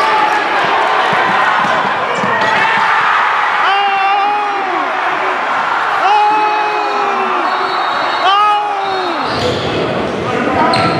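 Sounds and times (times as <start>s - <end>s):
basketball game in a gym: 0.0s - 10.9s
basketball bouncing: 0.6s - 3.1s.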